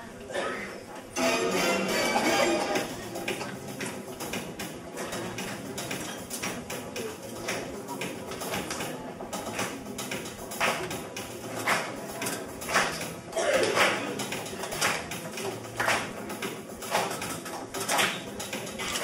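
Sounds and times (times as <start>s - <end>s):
indistinct audience chatter: 0.0s - 19.0s.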